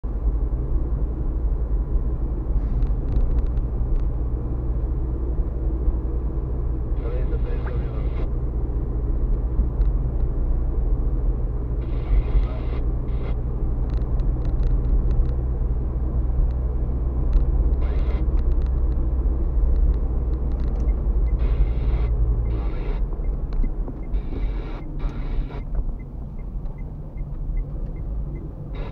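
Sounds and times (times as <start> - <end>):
car engine and road noise: 0.0 - 28.9.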